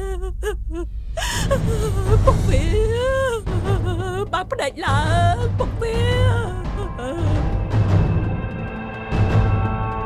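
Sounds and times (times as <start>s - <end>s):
woman sobbing and wailing: 0.0s - 7.6s.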